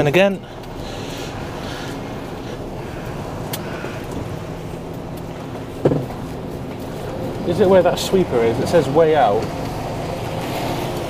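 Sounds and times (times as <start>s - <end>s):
diesel lorry engine at low revs: 0.0s - 11.0s.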